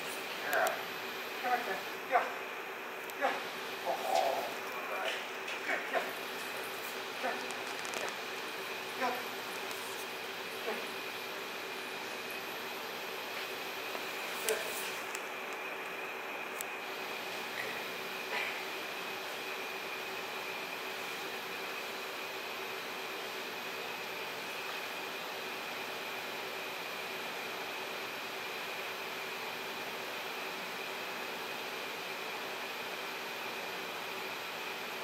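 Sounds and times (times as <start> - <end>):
air conditioner whirring: 0.0 - 35.0.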